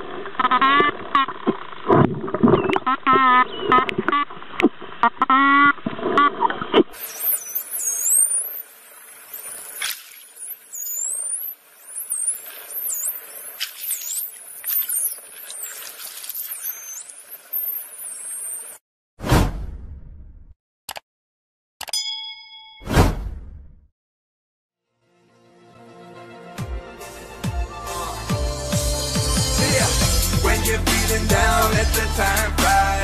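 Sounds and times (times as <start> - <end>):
dolphins whistling and squeaking: 7.0 - 18.8
loud thump: 19.2 - 20.0, 22.9 - 23.7.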